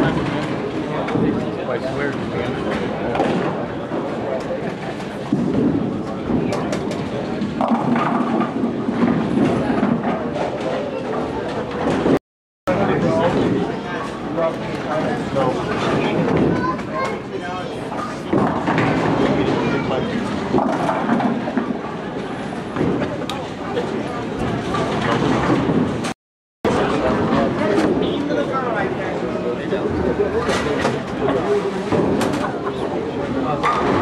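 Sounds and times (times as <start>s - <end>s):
background chatter: 0.0s - 26.1s, 26.7s - 34.0s
bowling ball rolling: 5.0s - 12.2s.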